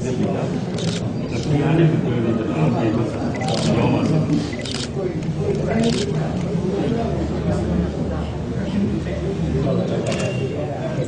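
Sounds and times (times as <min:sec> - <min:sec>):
people talking: 0:00.0 - 0:11.0
camera shutter clicks: 0:00.8 - 0:01.0, 0:03.4 - 0:03.8, 0:04.6 - 0:04.9, 0:05.8 - 0:06.1, 0:10.0 - 0:10.4.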